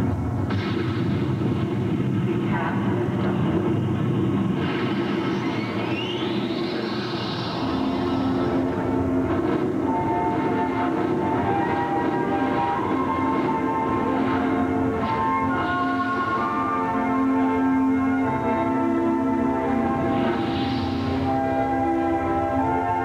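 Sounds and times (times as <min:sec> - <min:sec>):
held musical notes over loudspeakers: 0:07.6 - 0:20.4, 0:21.0 - 0:23.0.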